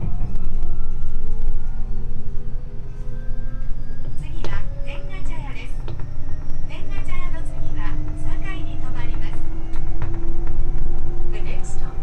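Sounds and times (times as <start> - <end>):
train cabin rumble and motor hum: 0.0 - 12.0.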